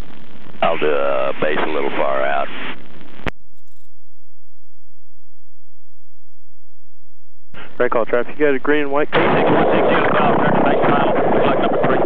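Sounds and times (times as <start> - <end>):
aircraft engine rumble: 7.6 - 12.0.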